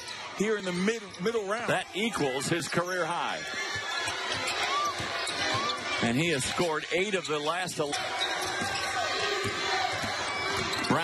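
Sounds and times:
arena crowd noise: 0.0 - 11.0
sneaker squeaks: 2.2 - 11.0.

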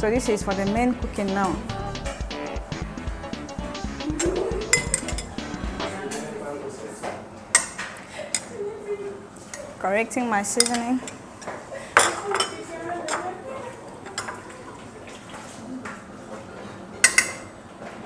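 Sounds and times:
metal spoon clinking pot: 4.7 - 5.4.

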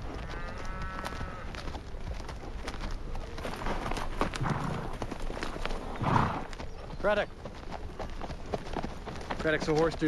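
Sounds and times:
horse hooves clip-clopping: 0.0 - 10.0.

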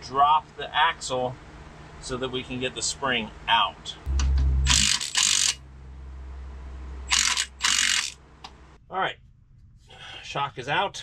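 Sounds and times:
ratchet tool turning bolt: 4.7 - 5.6, 7.1 - 8.2.

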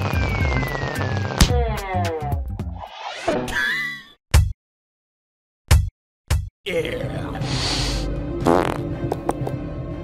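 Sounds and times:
music: 0.0 - 3.5, 5.7 - 10.0
cartoon fart: 8.4 - 9.4.

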